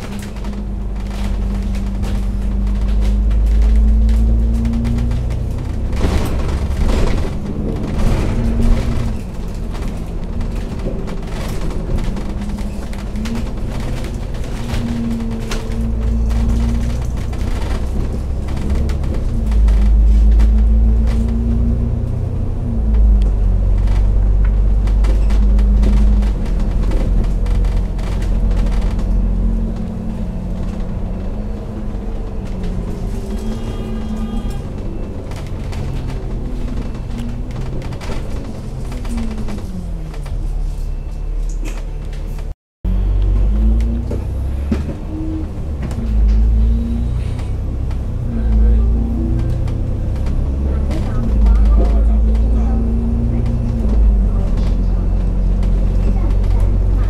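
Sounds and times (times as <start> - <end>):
bodywork knocks and rattles: 0.0 - 40.7
bus diesel engine running: 0.0 - 57.0.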